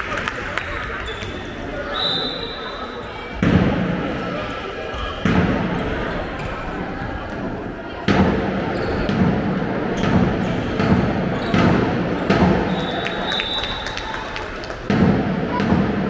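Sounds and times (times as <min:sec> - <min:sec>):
shouts echoing in large hall: 0:00.0 - 0:16.0.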